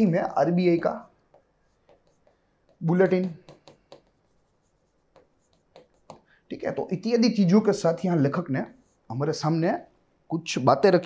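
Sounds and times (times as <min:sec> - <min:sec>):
pen scratching on a board: 0:01.3 - 0:06.2.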